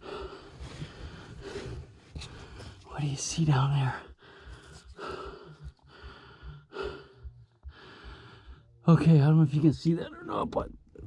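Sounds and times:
person breathing hard: 0:00.0 - 0:02.9, 0:04.1 - 0:08.8.

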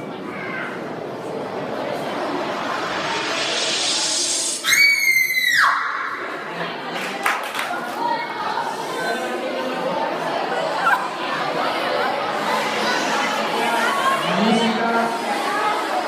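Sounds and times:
loud high-pitched held sound: 0:00.0 - 0:06.5, 0:11.0 - 0:16.0
children chattering and shouting: 0:00.0 - 0:16.0.

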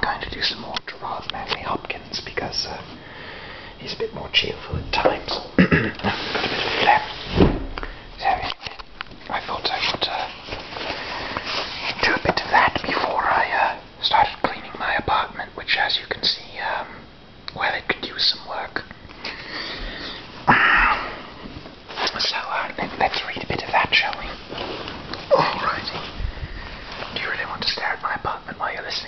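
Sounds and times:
man whispering: 0:00.0 - 0:03.0, 0:03.8 - 0:05.4, 0:06.8 - 0:07.2, 0:08.1 - 0:10.4, 0:12.0 - 0:18.9, 0:22.0 - 0:24.4, 0:25.2 - 0:26.2, 0:27.1 - 0:29.0.

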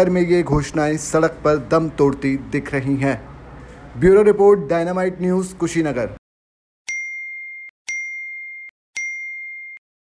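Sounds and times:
electronic ding tones: 0:06.9 - 0:09.8.

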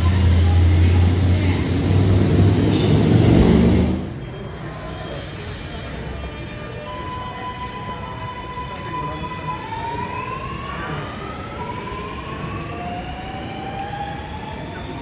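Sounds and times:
train rumble: 0:00.0 - 0:15.0.

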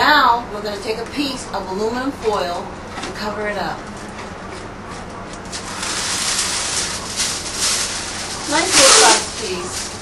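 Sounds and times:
aluminum foil rustling and crinkling: 0:05.0 - 0:10.0.

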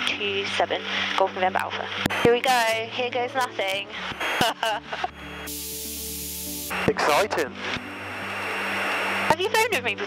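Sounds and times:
static hiss burst: 0:05.3 - 0:07.3.

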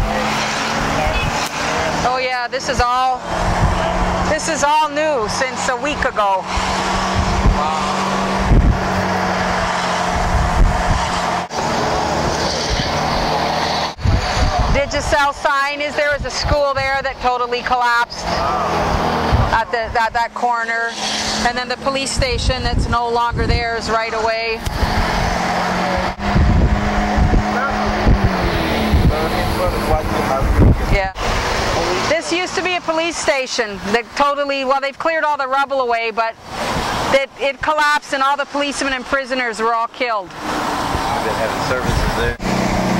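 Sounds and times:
low bumps: 0:00.0 - 0:34.4
car engine and road noise: 0:00.0 - 0:42.9.

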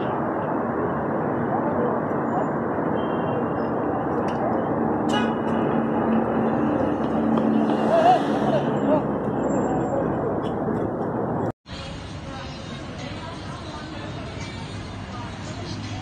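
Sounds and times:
city street traffic: 0:00.0 - 0:16.0
faint indistinct voices: 0:11.7 - 0:16.0.

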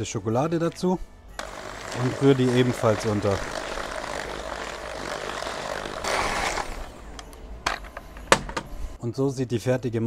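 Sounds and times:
electric hand mixer running: 0:01.4 - 0:07.1.

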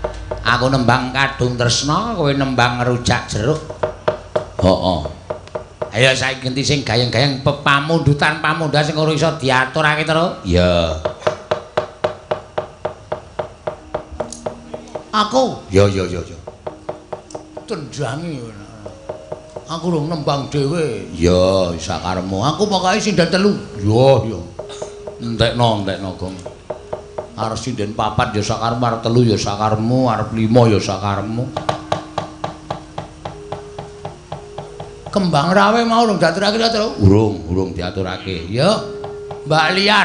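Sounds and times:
sharp hollow percussion strikes: 0:00.0 - 0:06.8, 0:10.7 - 0:37.4, 0:38.0 - 0:40.0
rhythmic gamelan knocking: 0:00.0 - 0:40.0
held gamelan tone: 0:12.8 - 0:40.0.

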